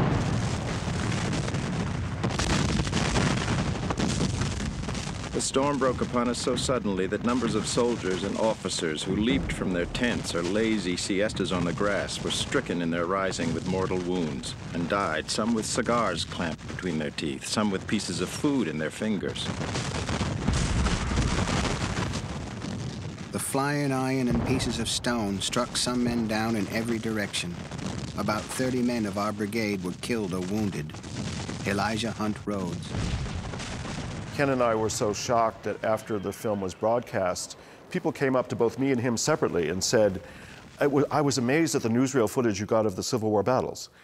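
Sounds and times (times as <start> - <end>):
cannon fire: 0.0 - 17.0, 19.3 - 36.0
shell explosions: 0.0 - 41.0.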